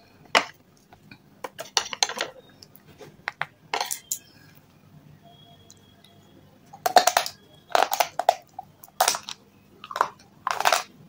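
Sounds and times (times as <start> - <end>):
stone chips clicking: 6.8 - 10.9.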